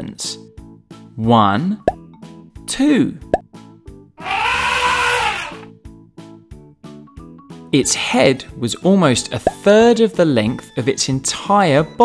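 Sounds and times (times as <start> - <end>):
light background music: 0.0 - 12.0
elephant trumpeting: 4.2 - 5.7.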